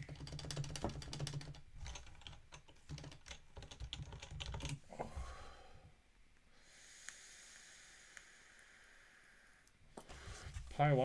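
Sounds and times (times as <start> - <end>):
fast typing on keyboard: 0.0 - 4.8.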